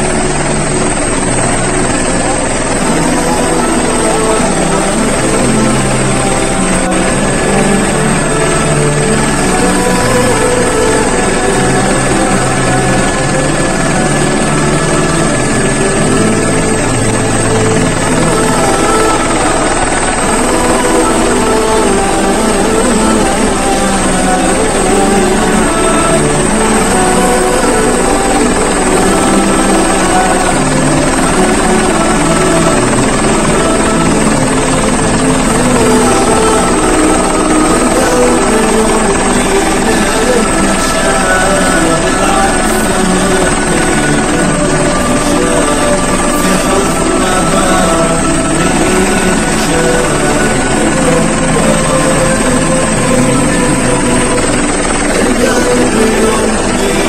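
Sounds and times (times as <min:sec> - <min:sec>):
helicopter drone from inside cabin: 0:00.0 - 0:57.0
thin high whine: 0:00.0 - 0:57.0.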